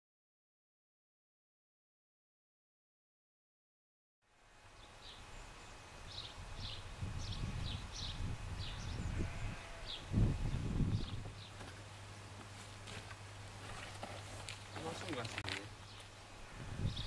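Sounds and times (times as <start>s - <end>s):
small birds chirping: 4.7s - 11.6s, 14.4s - 17.0s
wind buffeting microphone: 6.3s - 11.5s, 16.4s - 17.0s.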